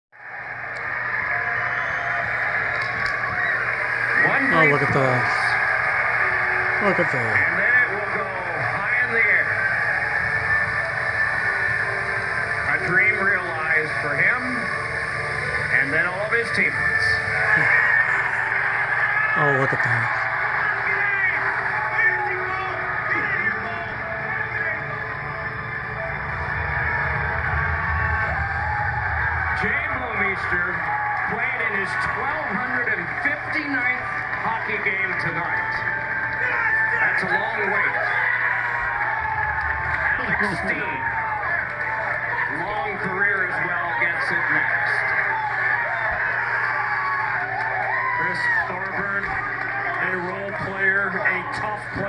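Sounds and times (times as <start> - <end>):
crowd cheering through tv speaker: 0.2 - 52.0.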